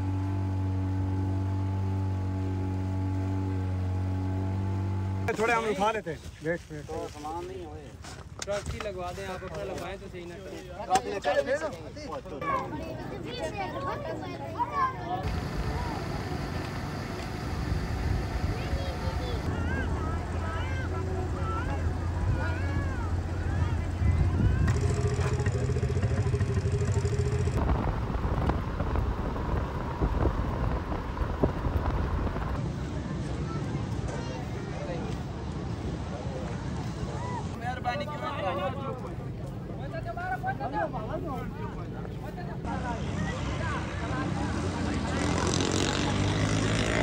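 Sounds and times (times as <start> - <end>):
motor running steadily: 0.0 - 5.3, 15.2 - 28.5
outdoor background noise: 0.0 - 47.0
people's voices: 5.3 - 27.5, 32.6 - 47.0.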